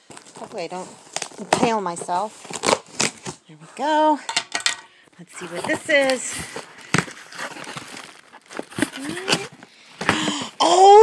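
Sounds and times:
cardboard rustling and scraping: 0:00.0 - 0:04.0, 0:05.4 - 0:10.2
person exclaiming: 0:10.6 - 0:11.0.

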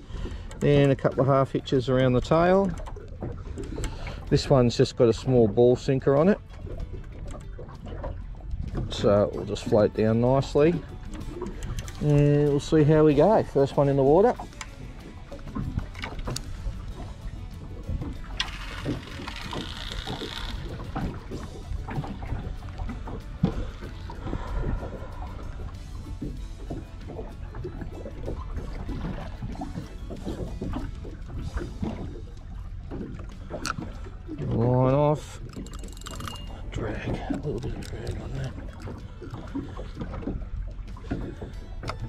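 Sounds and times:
fishing line running off reel: 0:14.5 - 0:32.3, 0:35.4 - 0:36.8.

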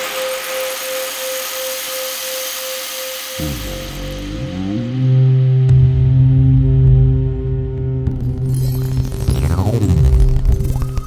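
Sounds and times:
steady held tone: 0:00.0 - 0:11.0
pitch-bending bass notes: 0:03.4 - 0:11.0.

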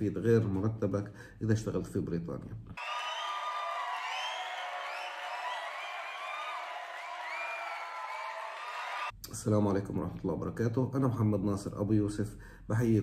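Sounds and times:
crowd cheering and whooping: 0:02.8 - 0:09.1.

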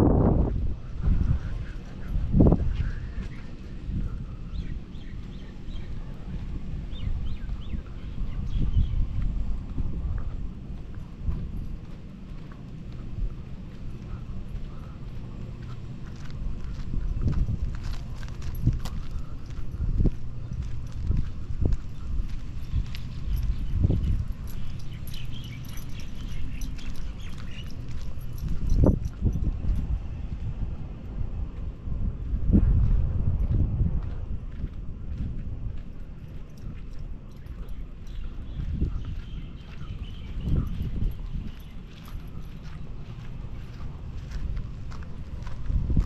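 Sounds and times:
footsteps on pavement: 0:00.0 - 0:46.0
low rumble: 0:00.0 - 0:46.0.

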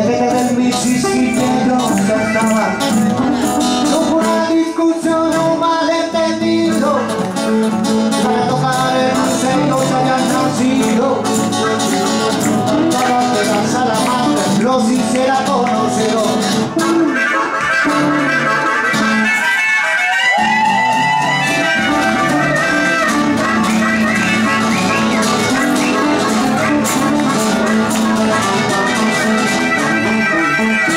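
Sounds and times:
acoustic guitars: 0:00.0 - 0:30.9
blues band playing: 0:00.0 - 0:30.9.

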